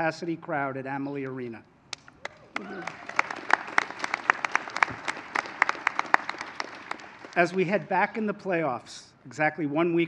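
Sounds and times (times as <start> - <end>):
sharp individual hand claps: 1.9 - 7.6
crowd applauding: 2.2 - 8.0.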